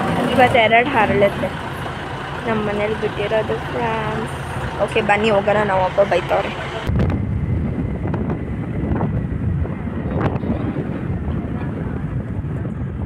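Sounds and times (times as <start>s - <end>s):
vehicle road noise: 0.0s - 13.0s
wind rumbling on microphone: 0.0s - 13.0s.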